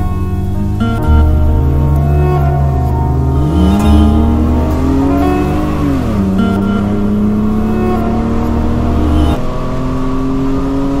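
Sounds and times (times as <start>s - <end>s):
deep low rumble: 0.0s - 9.4s
car engine accelerating: 0.0s - 11.0s.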